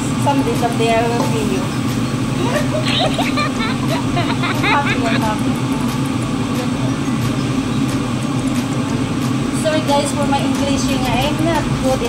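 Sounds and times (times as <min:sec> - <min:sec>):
stove rumble and hiss: 0:00.0 - 0:12.0.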